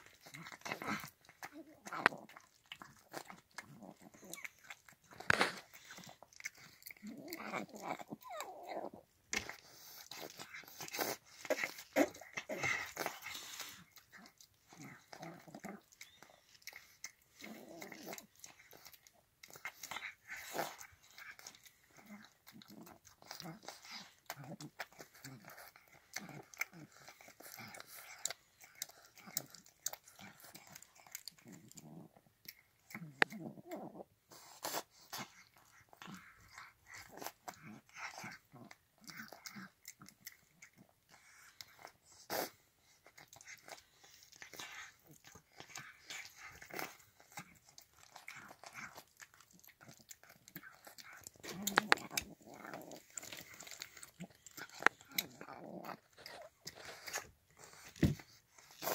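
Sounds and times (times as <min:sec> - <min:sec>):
cat chewing wet food: 0:00.0 - 0:58.9.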